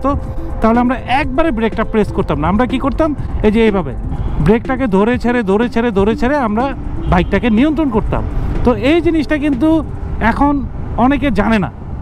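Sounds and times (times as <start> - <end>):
motorcycle engine rumble: 0.0 - 11.4
man speaking: 0.0 - 11.8.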